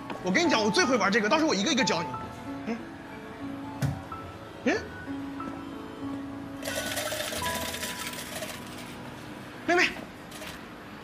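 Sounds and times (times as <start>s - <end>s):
soft background music: 0.0s - 11.0s
tokens clattering out of machine: 6.6s - 9.0s.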